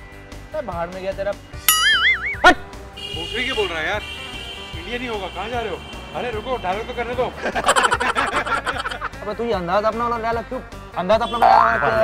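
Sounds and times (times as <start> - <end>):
background music: 0.0 - 12.0
comic boing sound effect: 1.7 - 2.7, 11.4 - 12.0.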